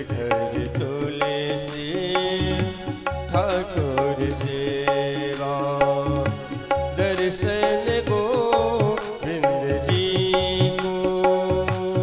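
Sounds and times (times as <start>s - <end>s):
keyboard melody: 0.0s - 12.0s
tabla rhythm: 0.0s - 12.0s.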